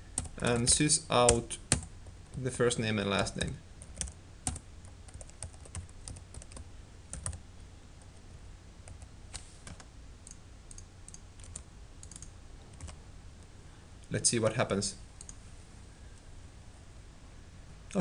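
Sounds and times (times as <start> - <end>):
computer keyboard typing: 3.4 - 7.4, 9.6 - 13.0.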